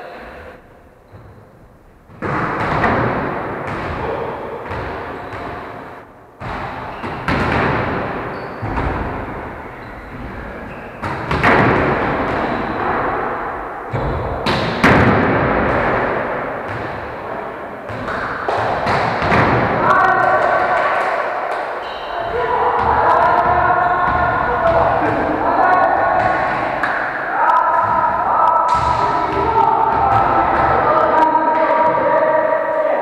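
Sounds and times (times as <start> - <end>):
players calling out: 6.8 - 33.0
hands hitting volleyball: 17.9 - 21.7.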